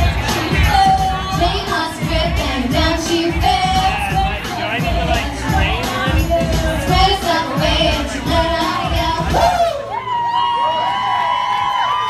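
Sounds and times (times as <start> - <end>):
women singing in harmony: 0.6 - 4.4, 6.1 - 9.6
audience cheering and whooping: 9.2 - 12.0.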